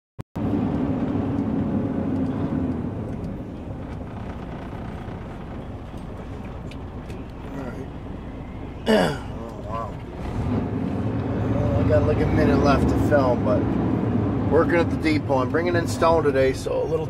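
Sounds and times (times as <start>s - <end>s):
road noise: 0.4s - 17.0s
truck diesel engine drone: 0.4s - 17.0s.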